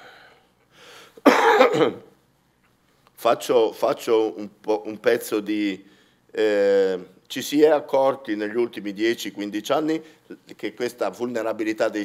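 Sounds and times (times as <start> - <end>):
man coughing: 1.2 - 2.1.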